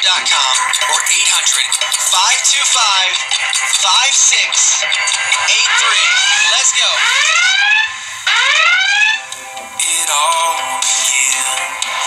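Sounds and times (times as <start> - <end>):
electronic whooping alarm: 0.6 - 10.2.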